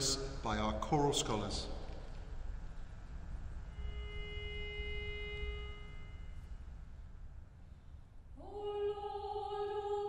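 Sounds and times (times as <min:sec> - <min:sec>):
faint low room rumble: 0:00.0 - 0:10.0
single steady pitch note: 0:03.6 - 0:06.9.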